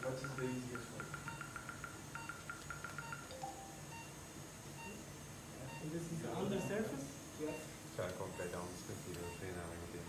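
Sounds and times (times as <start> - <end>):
rapid high electronic beeps: 0.2 - 4.1.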